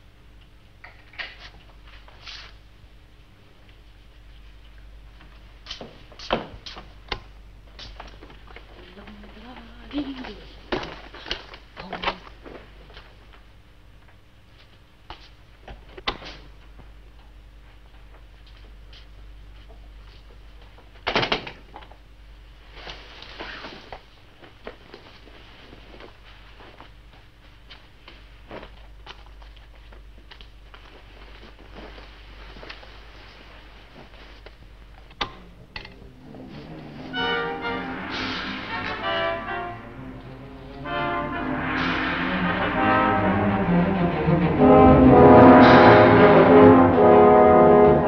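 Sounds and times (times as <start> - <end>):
low hum: 28.8 - 48.0
orchestral music with brass: 36.2 - 48.0.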